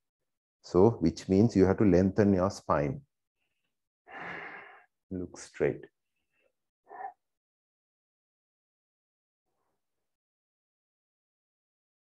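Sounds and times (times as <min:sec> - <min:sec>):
man breathing: 0:04.1 - 0:04.9.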